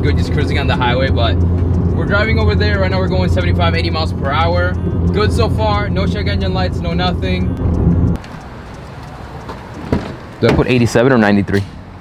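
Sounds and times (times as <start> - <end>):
car cabin road and engine drone: 0.0 - 12.0
outdoor background noise: 0.0 - 12.0.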